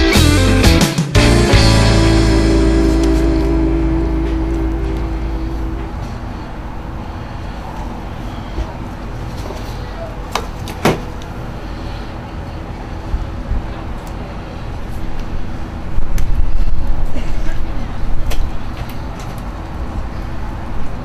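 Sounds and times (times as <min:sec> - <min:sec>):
low outdoor rumble: 0:00.2 - 0:21.0.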